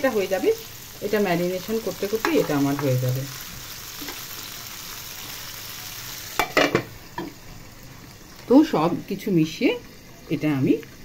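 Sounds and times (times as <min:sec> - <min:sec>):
chicken sizzling in oil: 0:00.0 - 0:11.0
glass lid clattering on pan: 0:06.4 - 0:07.3.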